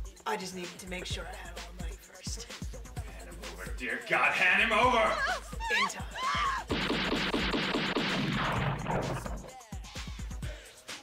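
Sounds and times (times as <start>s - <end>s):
background music: 0.0s - 11.0s
man laughing: 4.9s - 6.7s
automatic gunfire: 6.7s - 9.4s.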